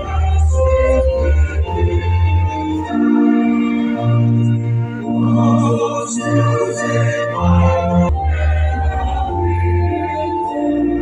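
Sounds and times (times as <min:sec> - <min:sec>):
choir singing a hymn: 0:00.0 - 0:11.0
organ: 0:00.0 - 0:11.0.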